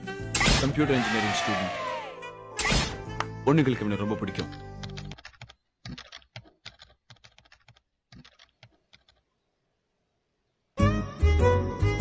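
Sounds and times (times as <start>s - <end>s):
laptop keyboard typing: 4.5s - 9.2s.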